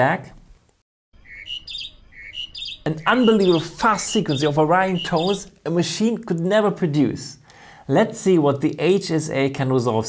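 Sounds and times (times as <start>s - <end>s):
bird singing: 1.2s - 5.6s.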